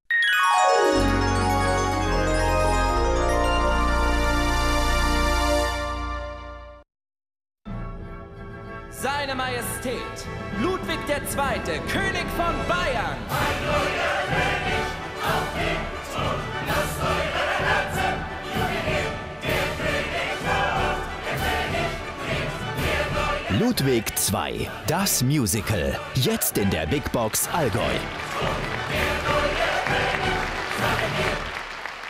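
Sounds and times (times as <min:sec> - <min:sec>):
orchestra playing: 0:00.1 - 0:06.8, 0:10.6 - 0:31.6
stage musical music: 0:00.1 - 0:06.8, 0:08.0 - 0:32.0
choir singing: 0:13.3 - 0:31.6
audience applauding: 0:26.2 - 0:32.0.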